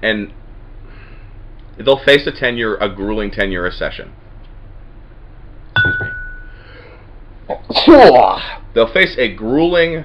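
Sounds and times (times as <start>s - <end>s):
faint room hum: 0.0s - 10.0s
sharp ringing clink: 5.8s - 6.6s.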